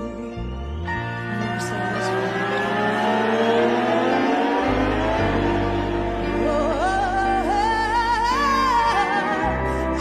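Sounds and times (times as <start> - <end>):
low bass: 0.0 - 10.0.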